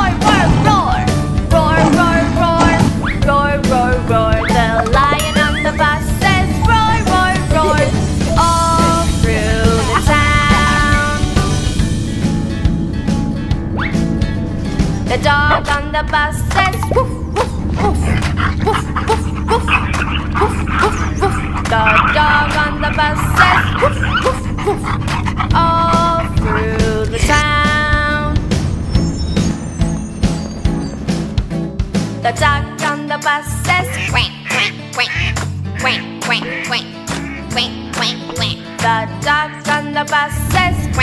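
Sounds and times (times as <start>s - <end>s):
children's song backing music: 0.0s - 12.4s, 14.8s - 29.8s, 32.0s - 41.0s
cartoon dog barking: 4.1s - 11.2s, 15.2s - 27.6s, 33.7s - 38.8s
duck-like quack calls: 33.8s - 38.6s.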